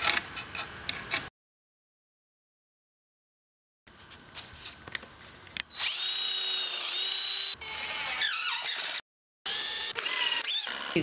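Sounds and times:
cordless drill whining into wood: 5.7s - 11.0s.

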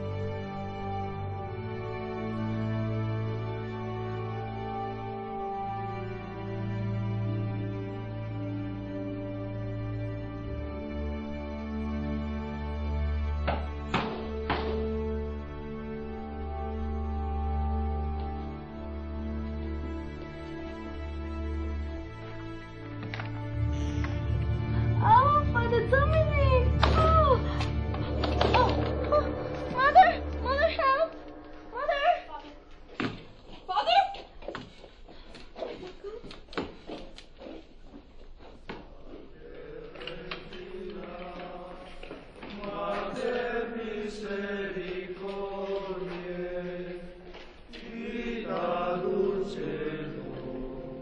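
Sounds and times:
choir chanting long notes: 0.0s - 25.6s, 26.8s - 32.9s, 39.1s - 51.0s
low film score music: 0.0s - 34.0s, 39.5s - 51.0s
low drone: 26.7s - 32.9s.

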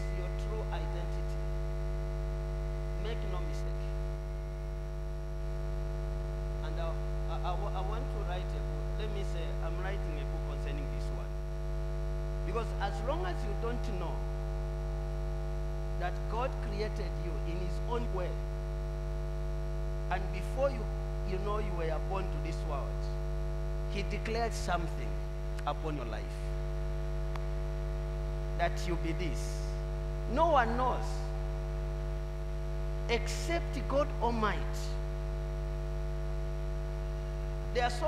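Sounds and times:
electrical mains hum: 0.0s - 38.0s.

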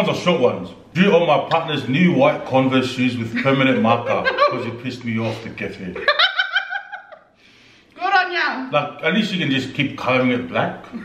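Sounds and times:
person laughing: 3.3s - 7.2s.

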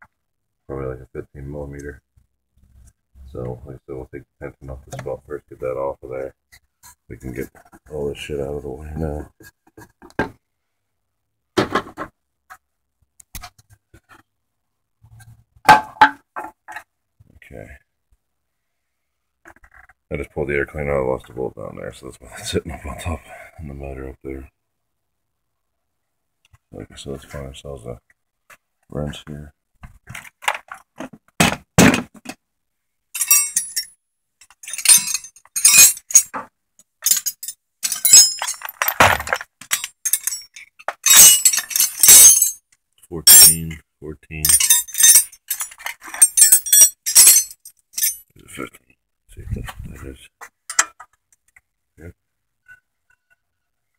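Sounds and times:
metal tools clattering in a toolbox: 33.2s - 36.4s, 37.0s - 42.6s, 43.3s - 43.6s, 44.4s - 48.2s.

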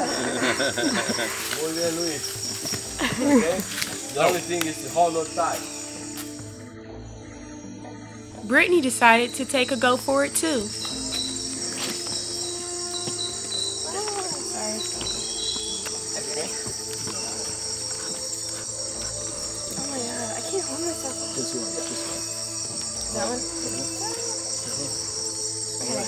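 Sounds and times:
faint voices: 0.0s - 5.7s, 8.4s - 26.0s
insect chorus chirring: 0.0s - 26.0s.

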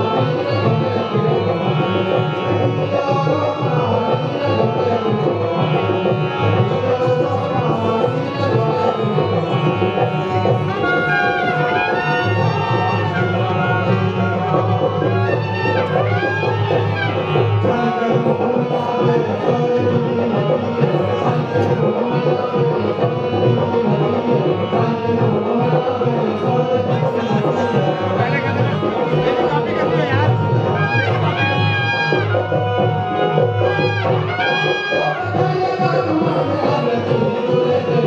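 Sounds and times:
hand drums: 0.0s - 38.0s.

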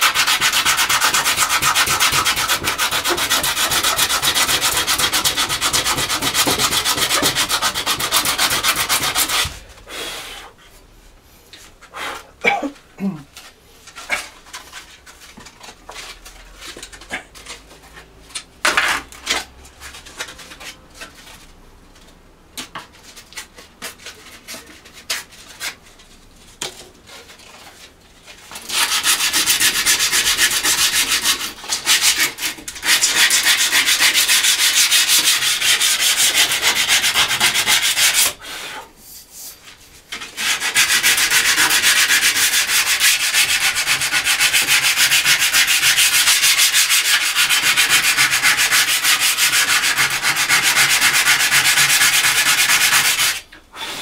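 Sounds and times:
sandpaper rubbing on metal: 0.0s - 9.6s, 28.4s - 54.0s.

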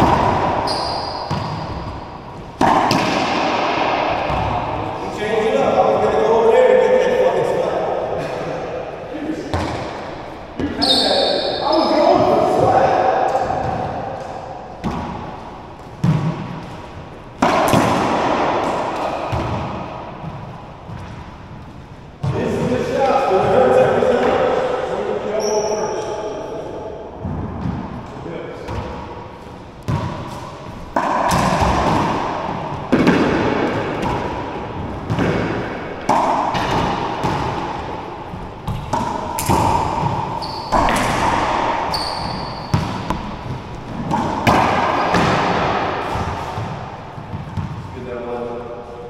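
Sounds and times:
sneakers squeaking on wooden floor: 0.0s - 2.6s, 9.5s - 12.6s, 25.3s - 26.2s, 38.2s - 45.4s
ball cracking off racquets and walls: 0.0s - 5.0s, 13.3s - 21.3s, 29.8s - 47.9s.

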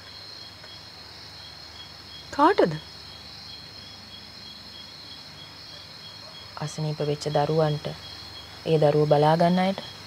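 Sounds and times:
crickets chirring: 0.0s - 10.0s
woman speaking: 2.3s - 2.8s, 6.6s - 8.0s, 8.6s - 10.0s.

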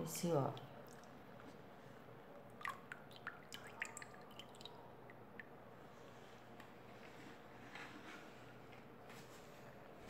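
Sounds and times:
faint liquid drips: 0.3s - 1.7s, 2.3s - 6.8s.

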